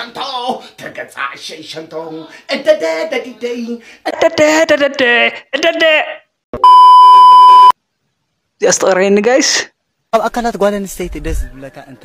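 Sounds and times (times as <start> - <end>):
electronic censor bleep: 6.6 - 7.8.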